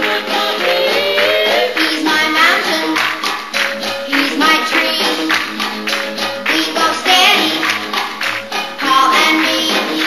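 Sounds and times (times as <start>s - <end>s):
woman singing: 1.7s - 3.1s, 4.0s - 5.4s, 6.4s - 7.8s, 8.8s - 10.0s
pop song played by band: 8.8s - 10.0s.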